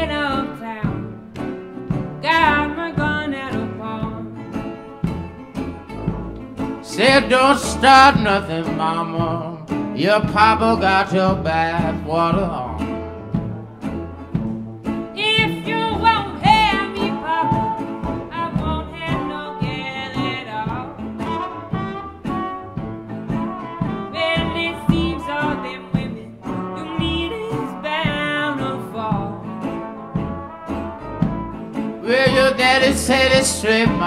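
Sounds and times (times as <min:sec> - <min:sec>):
horn lines: 0:00.0 - 0:34.0
strummed banjo and guitar: 0:00.0 - 0:34.0
tuba bass: 0:00.0 - 0:34.0.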